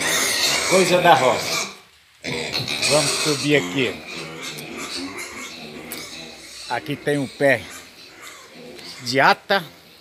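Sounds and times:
narration: 0.5s - 1.7s, 2.7s - 4.9s, 5.9s - 7.8s.

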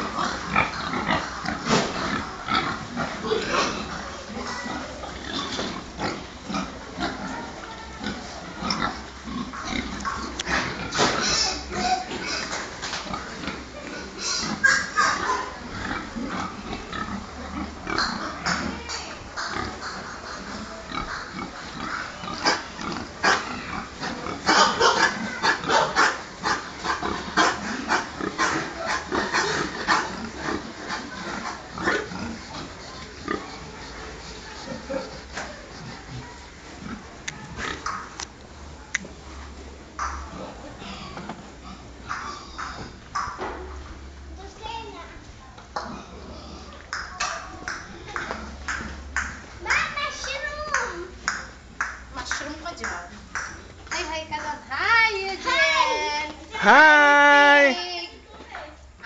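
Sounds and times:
pigs calling: 0.0s - 38.2s, 40.0s - 43.5s.

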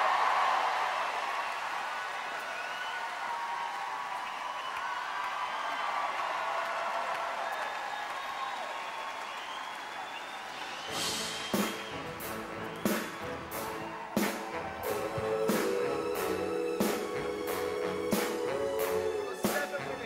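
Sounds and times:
crowd applauding and cheering: 0.0s - 20.0s.

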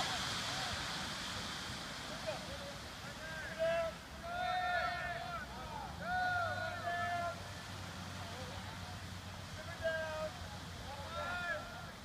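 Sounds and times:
group of people yelling: 3.8s - 7.4s.

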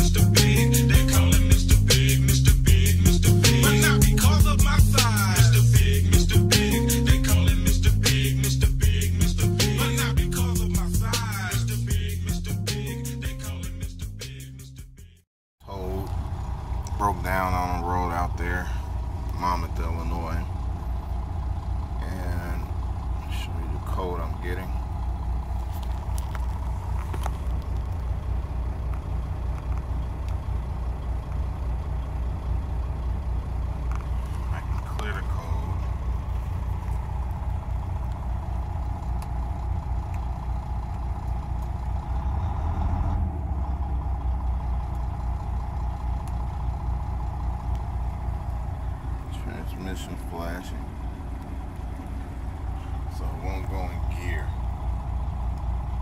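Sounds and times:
diesel truck engine idling: 0.0s - 56.0s.

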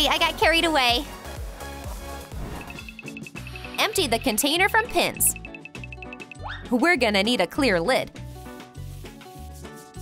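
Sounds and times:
electronic music with steady beat: 1.0s - 6.4s
paintbrush rubbing plastic lid: 8.2s - 10.0s.

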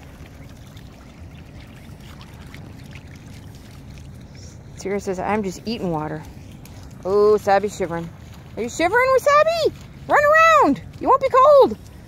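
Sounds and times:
splashing in puddle water: 0.0s - 12.0s.

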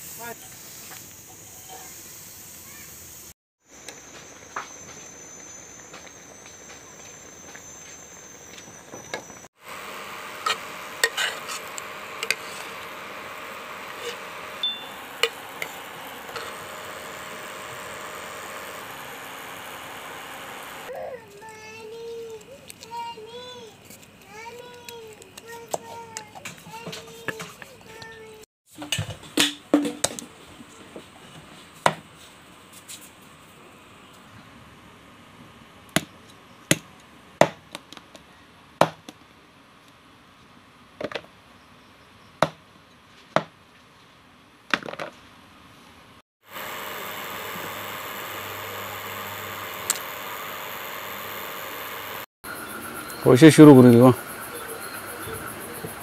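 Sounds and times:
steady hiss: 0.0s - 5.4s, 46.5s - 56.0s.

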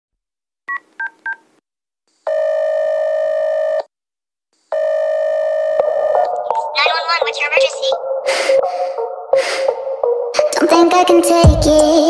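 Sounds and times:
phone ringing tones: 2.3s - 3.9s, 4.7s - 8.1s
music: 6.1s - 12.0s.

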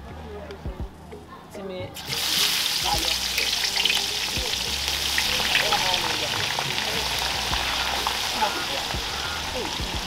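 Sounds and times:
fish sizzling in hot oil: 2.0s - 10.0s.

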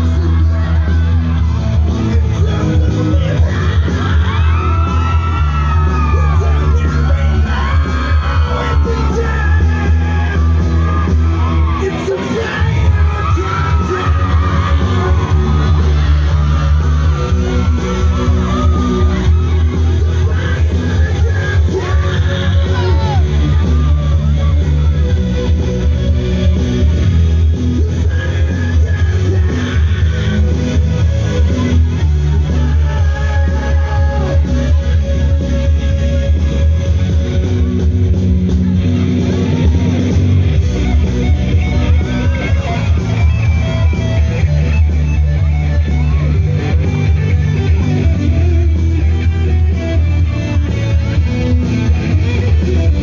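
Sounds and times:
crowd shouting: 0.0s - 53.0s
electric guitar: 0.0s - 53.0s
heavy bass: 0.0s - 53.0s
live band playing amplified music: 0.0s - 53.0s
person singing: 11.7s - 24.6s, 27.7s - 36.5s.

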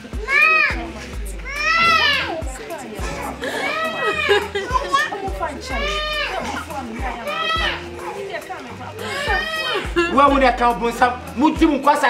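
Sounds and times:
background music with low bass: 0.0s - 12.0s
woman wailing: 0.2s - 10.7s.

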